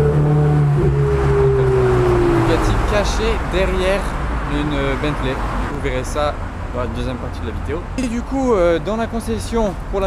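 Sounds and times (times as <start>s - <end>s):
vehicle passing by: 0.0s - 8.6s
road traffic passing: 0.0s - 10.0s.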